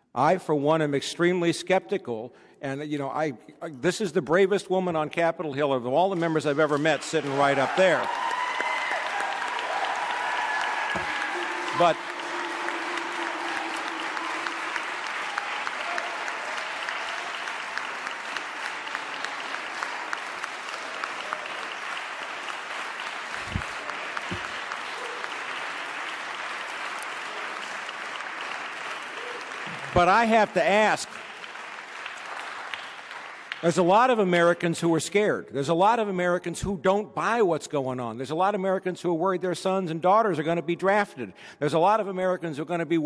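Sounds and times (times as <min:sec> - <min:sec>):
audience applauding: 0:06.5 - 0:34.3.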